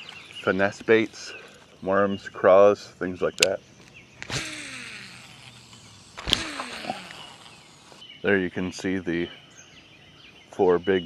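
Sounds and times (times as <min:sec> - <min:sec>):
fishing reel spool whirring: 0:04.2 - 0:08.0
fishing rod cast snap: 0:06.2 - 0:07.6.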